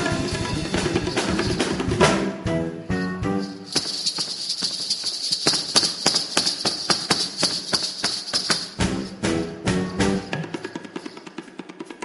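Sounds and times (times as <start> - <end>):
ankle bells jingling: 0.0 - 2.0, 3.0 - 11.6
feet stamping: 3.4 - 11.1.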